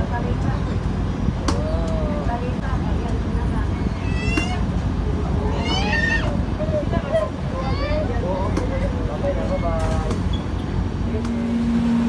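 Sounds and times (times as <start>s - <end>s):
barge engine rumble: 0.0s - 12.0s
wind on microphone: 0.1s - 7.7s
high-pitched cries: 5.5s - 6.4s.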